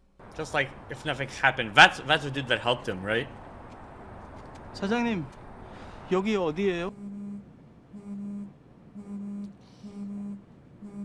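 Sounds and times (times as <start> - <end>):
smartphone vibrating: 6.9 - 11.0.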